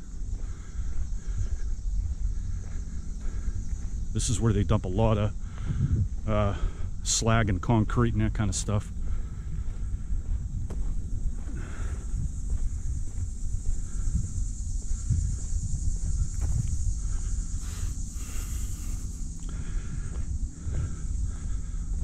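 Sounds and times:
high-pitched insect drone: 0.0 - 22.0
low rumble: 0.0 - 22.0
footsteps on gravel: 9.6 - 14.0, 14.8 - 19.2.

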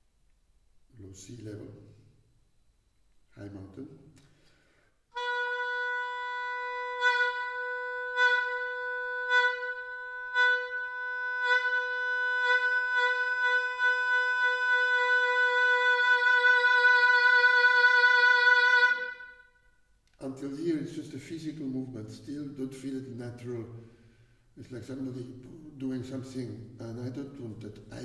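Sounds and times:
oboe holding one note: 5.1 - 19.6.

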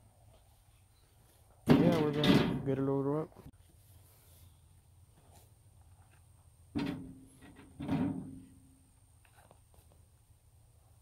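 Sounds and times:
logs thudding into metal trailer: 1.6 - 2.8, 6.7 - 8.7.

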